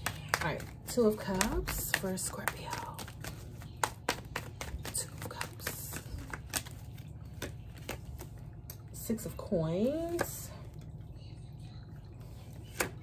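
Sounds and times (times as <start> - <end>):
cards being shuffled: 0.0 - 8.4.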